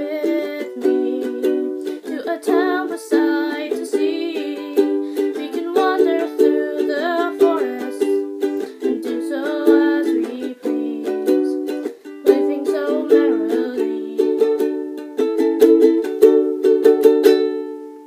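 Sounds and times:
person singing wordless melody: 0.0 - 16.1
ukulele strumming chords: 0.0 - 18.0.

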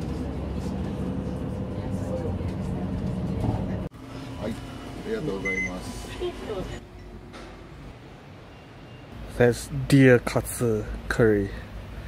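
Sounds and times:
voices: 0.0 - 3.9
bus engine rumble: 0.0 - 12.0
road noise: 0.0 - 12.0
short beep: 5.4 - 5.8.

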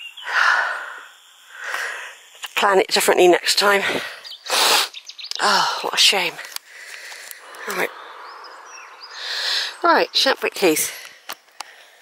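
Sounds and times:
small birds chirping: 0.0 - 12.0
steady outdoor hiss: 0.0 - 12.0
rush of noise: 7.0 - 10.3.

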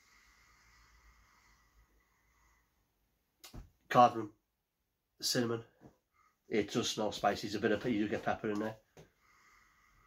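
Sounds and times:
person speaking: 6.5 - 8.8.

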